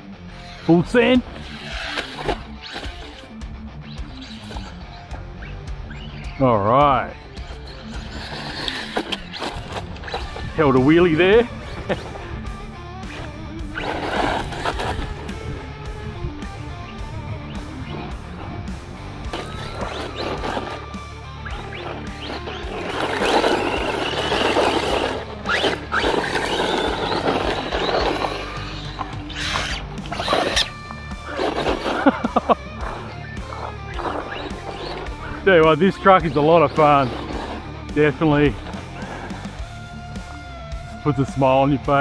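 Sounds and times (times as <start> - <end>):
background music: 0.0 - 42.0
rc truck motor whining: 0.0 - 42.0
tyres crunching on gravel: 0.6 - 42.0.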